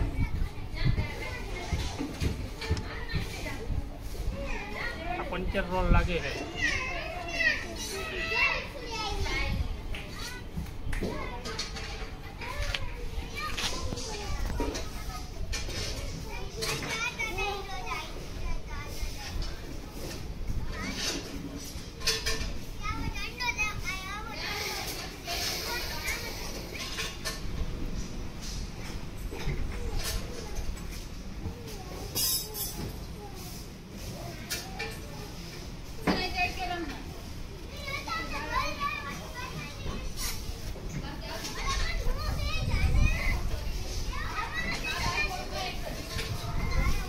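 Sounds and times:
children calling: 0:00.0 - 0:47.0.

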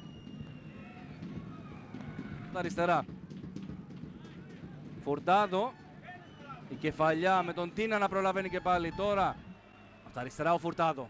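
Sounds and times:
faint stadium ambience: 0:00.0 - 0:11.0.

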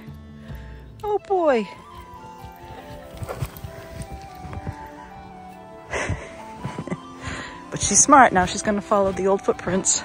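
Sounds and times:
soft background music: 0:00.0 - 0:10.0
dog bounding through deep snow: 0:02.6 - 0:04.9.

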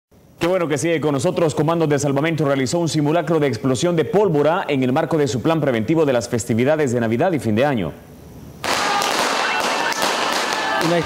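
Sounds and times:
firecrackers crackling: 0:08.6 - 0:11.0.

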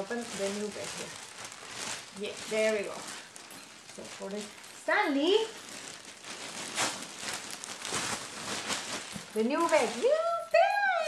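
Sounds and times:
plastic wrapping crinkling: 0:00.0 - 0:11.0.

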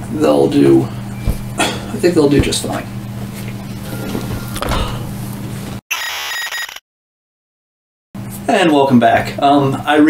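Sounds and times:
low electrical hum: 0:00.0 - 0:05.8
handling noise: 0:01.2 - 0:05.8
electronic error buzzer: 0:05.9 - 0:06.8.

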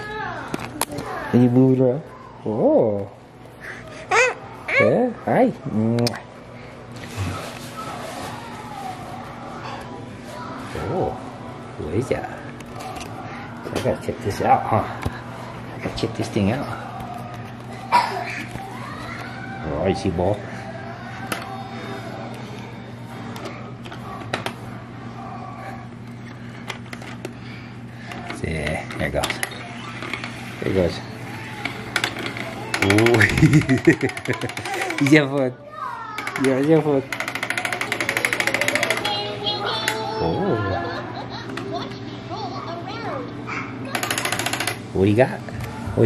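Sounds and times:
baby babbling: 0:03.6 - 0:05.0.

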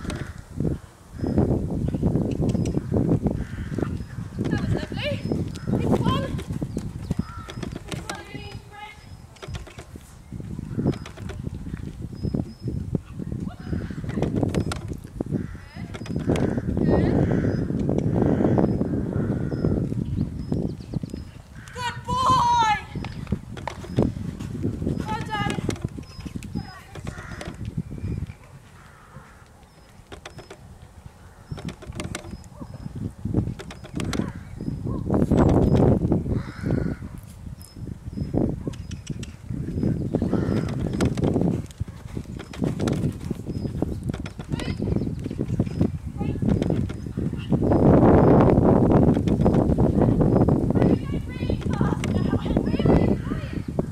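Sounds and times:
muffled hoofbeats cantering: 0:03.4 - 0:08.8, 0:38.7 - 0:47.6
horse hoofbeats cantering: 0:40.3 - 0:45.8.

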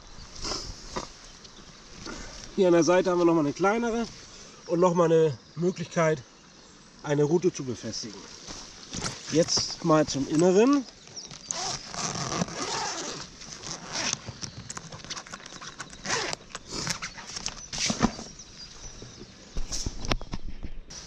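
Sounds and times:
zipper being pulled open: 0:11.2 - 0:18.2.

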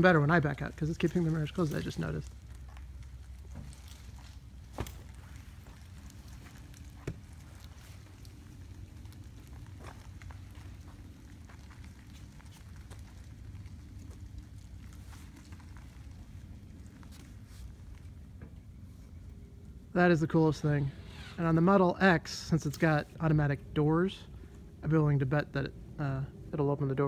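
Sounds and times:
tyres rumbling on asphalt: 0:00.0 - 0:20.8.

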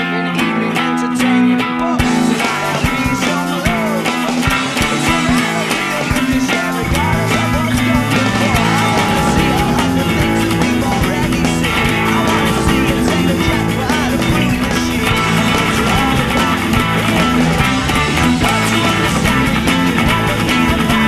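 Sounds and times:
electric guitar picking and strumming: 0:00.0 - 0:21.0
rock backing track: 0:00.0 - 0:21.0.

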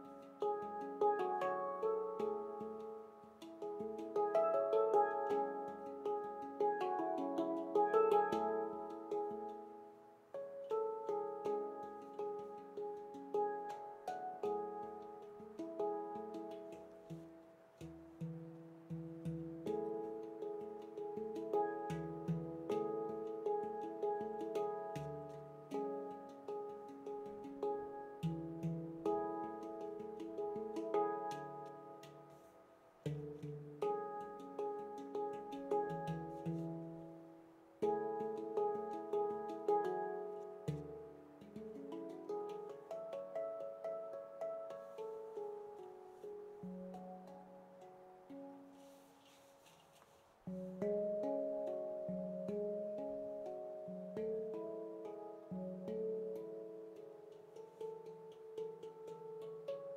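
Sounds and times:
handpan notes played by hand: 0:00.0 - 0:59.9.

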